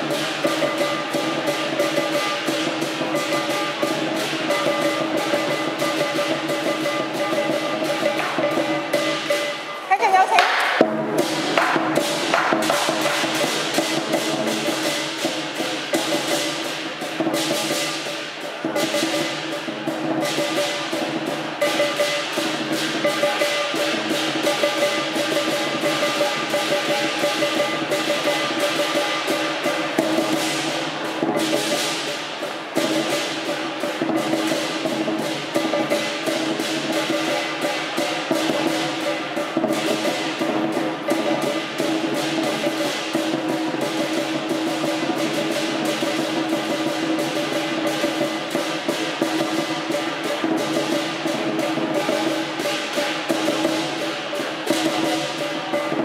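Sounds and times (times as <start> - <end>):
cymbals: 0.0 - 56.0
drum: 0.0 - 56.0.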